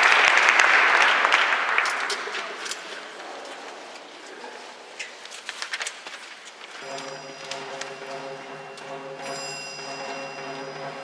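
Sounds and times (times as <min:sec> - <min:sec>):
audience applause: 0:00.0 - 0:03.2
wind band held chord: 0:06.8 - 0:11.0.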